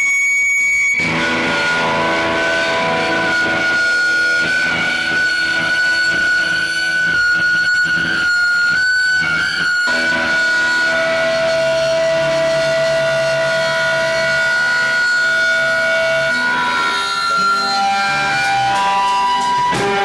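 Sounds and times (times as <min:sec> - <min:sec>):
electric guitar feedback whine: 0:00.0 - 0:20.0
lower held feedback tone: 0:00.0 - 0:20.0.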